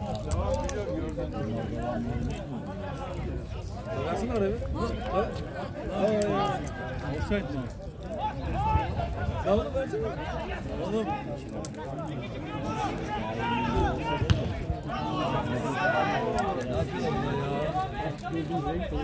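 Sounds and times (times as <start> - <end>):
men talking and calling out: 0.0 - 19.0.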